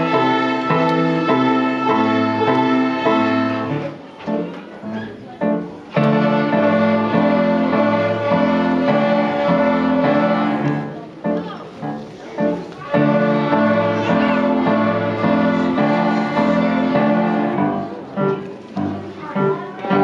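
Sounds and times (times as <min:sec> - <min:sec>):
children playing violins: 0:00.0 - 0:20.0.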